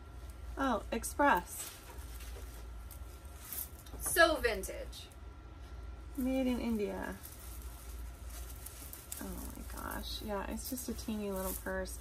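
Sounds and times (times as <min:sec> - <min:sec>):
beaded purse rustling and clicking: 0:01.3 - 0:04.2, 0:06.2 - 0:12.0.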